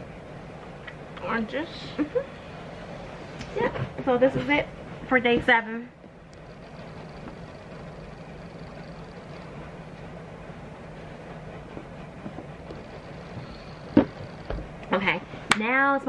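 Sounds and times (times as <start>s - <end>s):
low room noise with faint hum: 0.0s - 16.0s.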